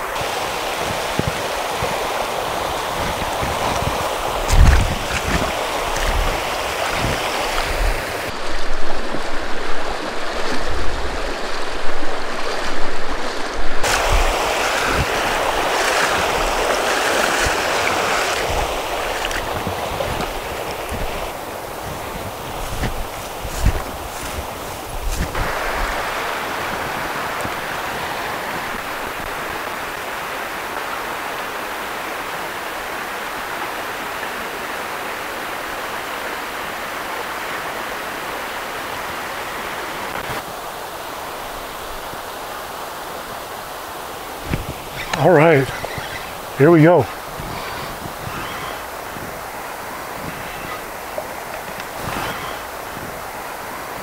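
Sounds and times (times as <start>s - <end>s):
water rushing over stream riffle: 0.0s - 54.0s
waders sloshing through water: 0.6s - 29.4s, 44.4s - 53.2s.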